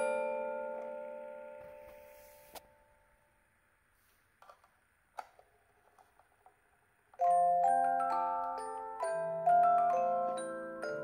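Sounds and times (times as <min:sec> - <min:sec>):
music box notes: 0:00.0 - 0:03.0, 0:07.2 - 0:11.0.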